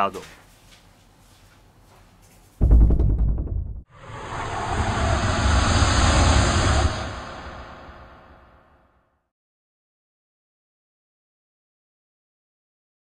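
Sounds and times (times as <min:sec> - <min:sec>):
deep boom: 0:02.6 - 0:08.5
wash of noise: 0:03.9 - 0:08.8.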